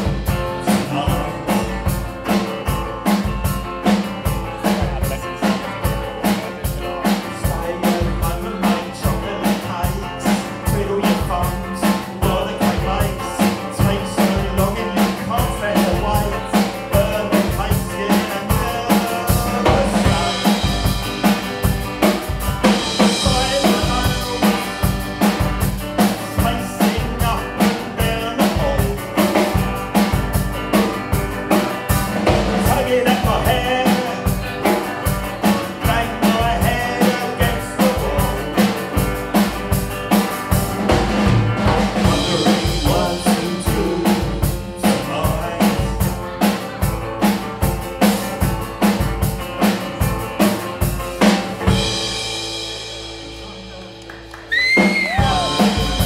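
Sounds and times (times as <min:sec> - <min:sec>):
drum kit fast beat: 0:00.0 - 0:56.0
electric guitar: 0:00.0 - 0:56.0.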